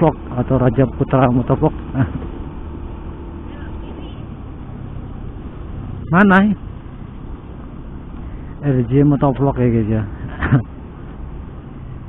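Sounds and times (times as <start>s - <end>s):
road and wind noise: 0.0s - 12.0s
scooter engine humming: 0.0s - 12.0s.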